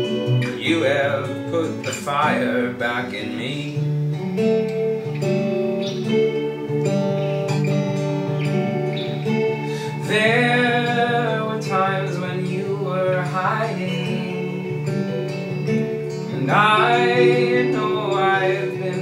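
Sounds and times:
acoustic guitar picking: 0.0s - 19.0s
bending melodic guitar line: 0.0s - 19.0s
electric guitar: 0.0s - 19.0s.

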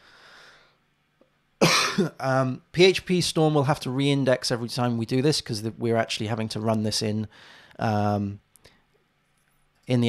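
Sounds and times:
faint breathing into microphone: 0.0s - 0.8s, 7.3s - 7.8s.

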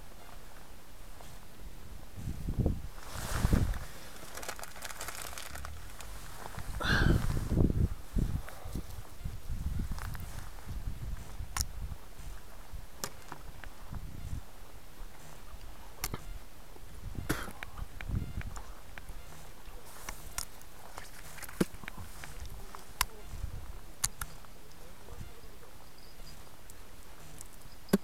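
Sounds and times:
low rumbles: 0.0s - 19.8s
footsteps on dirt path: 0.2s - 24.9s
sharp irregular clicks: 24.0s - 24.8s.

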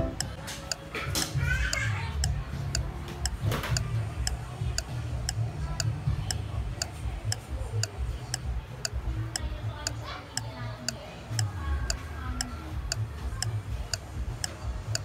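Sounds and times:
clock ticking: 0.0s - 15.0s
low steady rumble: 2.1s - 15.0s.

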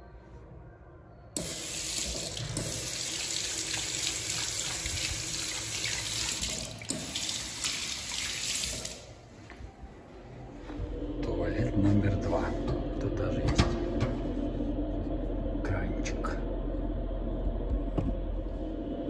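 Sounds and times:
faucet water pouring into sink: 1.4s - 9.1s.

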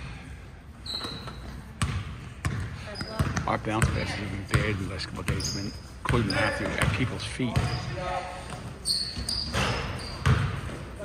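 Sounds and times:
brief high squeak: 0.8s - 1.6s, 8.8s - 10.3s
basketball bounce on gym floor: 1.8s - 7.9s, 9.6s - 10.8s.

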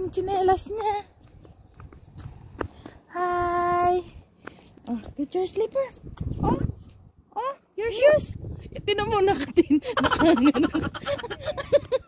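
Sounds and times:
footsteps on concrete: 0.0s - 7.1s.

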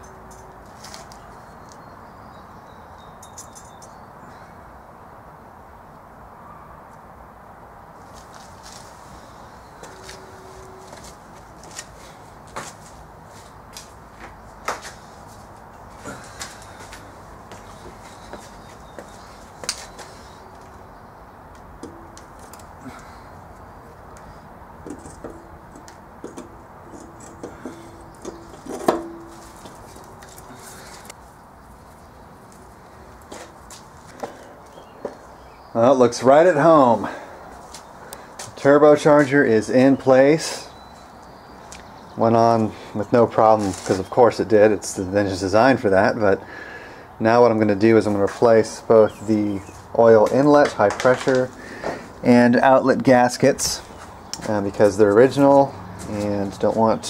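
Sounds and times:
hand tools clicking and knocking: 3.2s - 4.0s, 21.5s - 22.8s, 24.1s - 31.2s, 50.2s - 52.0s.

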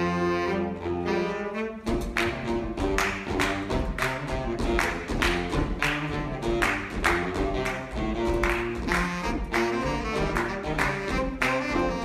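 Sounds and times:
saxophone ensemble over a beat: 0.0s - 12.0s.

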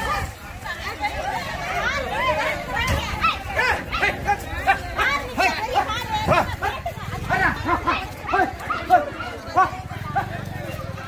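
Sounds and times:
people shouting: 1.2s - 10.3s.

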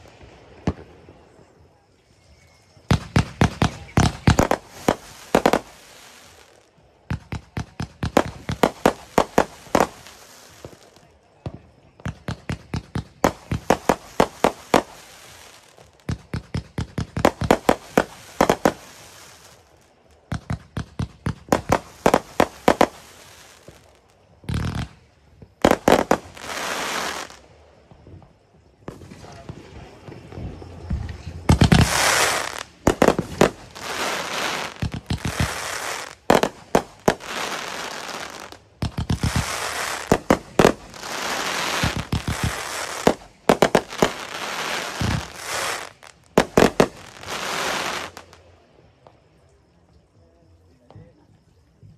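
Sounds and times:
fireworks banging: 0.0s - 1.4s, 2.9s - 48.4s
fireworks crackling: 0.0s - 1.8s, 2.7s - 49.2s.

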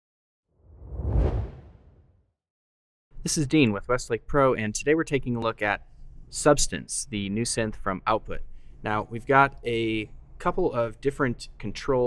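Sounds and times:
deep rumble: 0.7s - 1.9s
whoosh sound effect: 0.7s - 1.9s.

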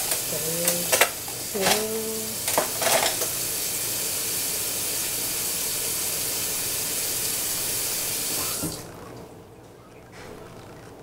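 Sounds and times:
water running into sink: 0.0s - 9.0s.

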